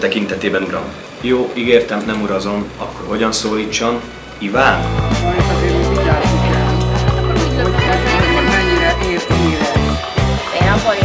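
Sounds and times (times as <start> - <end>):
held bass note: 2.7 - 10.0
warbling synth line: 3.8 - 11.0.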